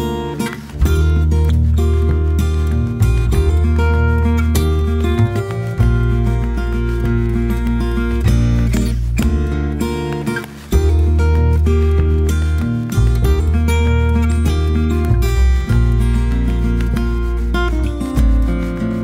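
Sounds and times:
strummed acoustic guitar music: 0.0s - 19.0s.

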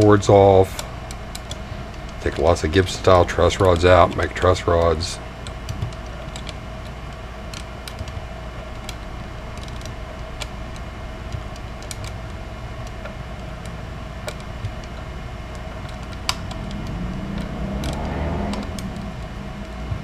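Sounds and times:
steady hum: 0.0s - 20.0s
allen wrench clicking: 12.8s - 19.8s
low rumble: 15.1s - 20.0s.

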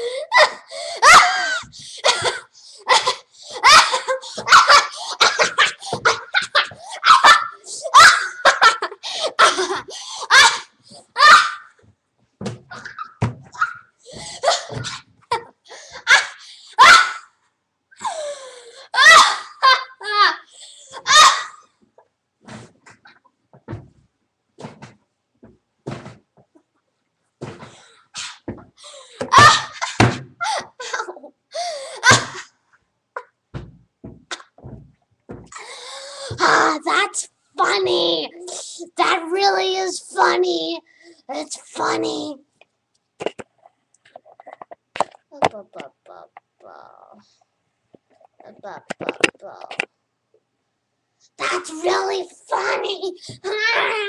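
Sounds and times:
girl laughing: 0.3s - 10.6s, 29.2s - 31.3s.

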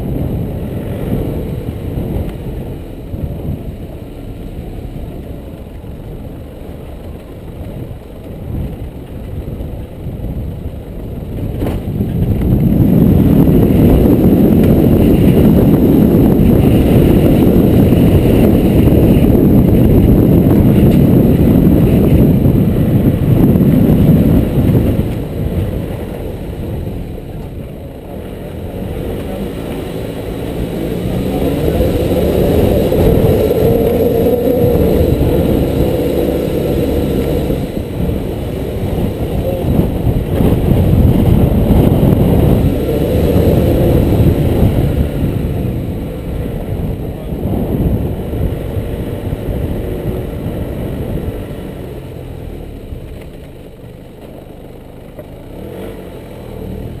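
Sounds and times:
engine low rumble: 0.0s - 57.0s
wind buffeting microphone: 0.0s - 57.0s.

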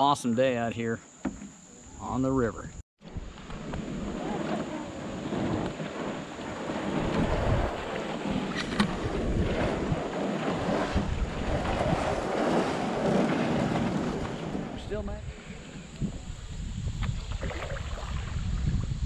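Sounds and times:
wind buffeting microphone: 2.5s - 19.0s
water splashing against canoe: 3.0s - 16.3s, 16.9s - 18.9s.

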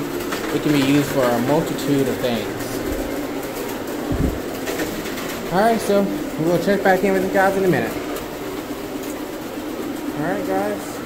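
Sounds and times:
machine whirring: 0.0s - 11.0s.

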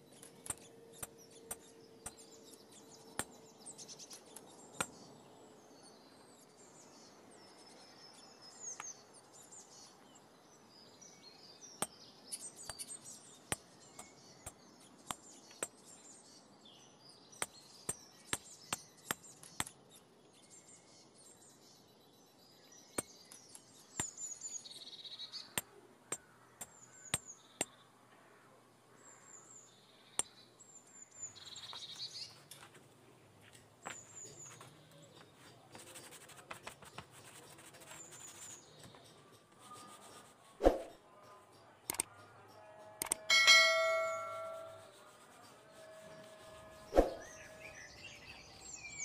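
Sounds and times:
birds chirping: 0.0s - 49.0s
taps and clicks of leather tools: 0.2s - 2.3s, 3.1s - 3.4s, 4.1s - 5.0s, 11.8s - 15.8s, 17.4s - 19.8s, 22.9s - 24.2s, 25.6s - 27.8s, 41.9s - 42.3s, 43.0s - 43.3s.

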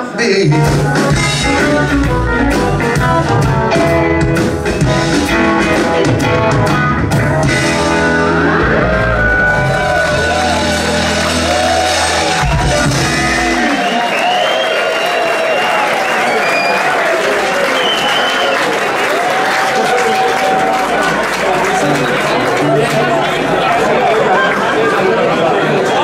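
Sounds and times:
live electric band playing: 0.0s - 14.8s, 18.9s - 25.0s
audience applause and cheering: 7.1s - 26.0s.

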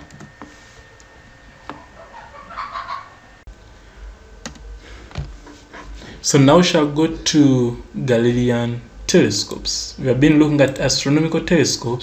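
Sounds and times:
faint bird-like animal calls: 1.7s - 3.3s.

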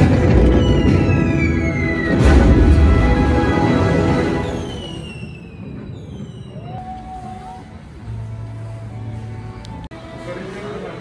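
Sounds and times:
outdoor ambience: 0.0s - 10.2s
falling whistle tones: 0.1s - 3.0s, 4.0s - 7.8s.

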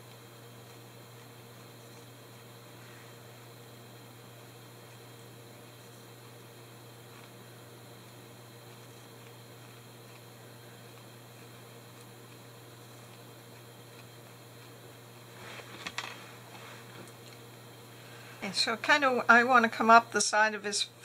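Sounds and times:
room hiss and hum: 0.0s - 21.0s.

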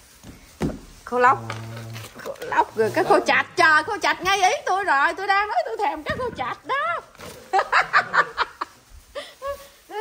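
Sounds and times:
person laughing: 6.8s - 10.0s.

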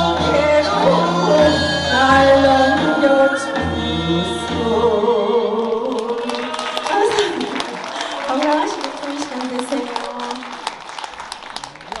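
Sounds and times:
audience applause: 5.6s - 12.0s.

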